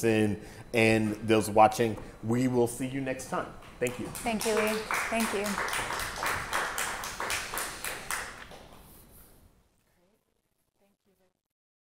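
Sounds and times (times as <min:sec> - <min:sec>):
small audience applauding: 0:03.8 - 0:09.0.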